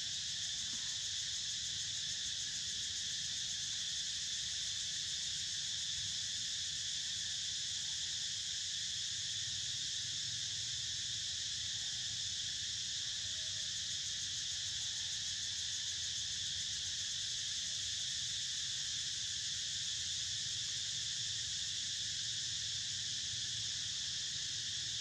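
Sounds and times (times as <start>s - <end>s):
insects droning: 0.0s - 25.0s.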